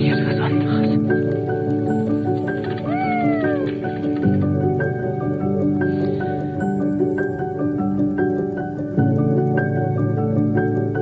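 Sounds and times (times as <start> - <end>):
soft instrumental music: 0.0 - 11.0.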